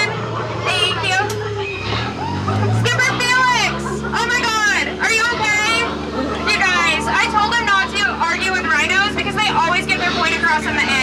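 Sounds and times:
woman talking over loudspeaker: 0.0s - 1.4s, 2.6s - 11.0s.

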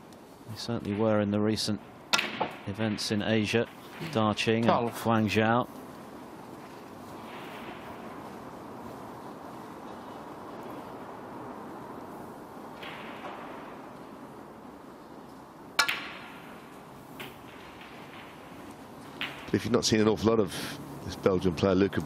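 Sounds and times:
snooker balls clicking: 9.8s - 19.8s.

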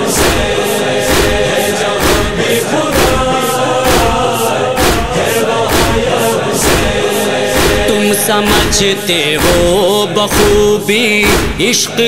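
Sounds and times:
steady percussive beat: 0.0s - 11.9s
male chorus chanting: 0.0s - 12.0s.

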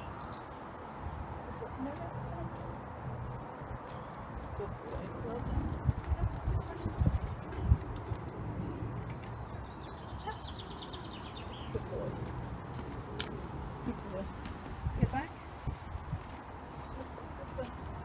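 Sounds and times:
footsteps on stone paving: 0.9s - 18.0s.

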